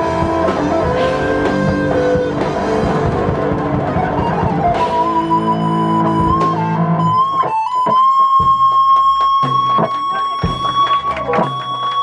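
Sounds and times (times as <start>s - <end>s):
electric lead guitar long note: 0.0s - 11.6s
rhythm guitar and bass: 0.0s - 12.0s.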